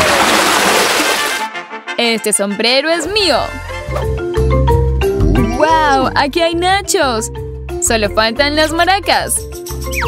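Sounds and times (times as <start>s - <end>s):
splash rush of noise: 0.0s - 1.5s.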